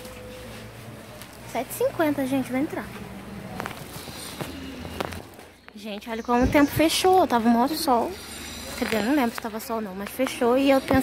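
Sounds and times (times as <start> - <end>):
distant voices: 0.0 - 11.0.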